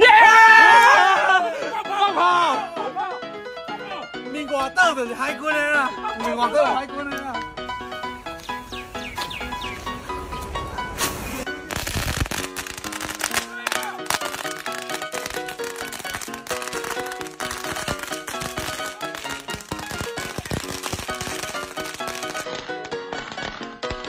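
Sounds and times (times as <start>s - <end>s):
background music: 0.0s - 24.0s
firecrackers cracking: 10.9s - 24.0s.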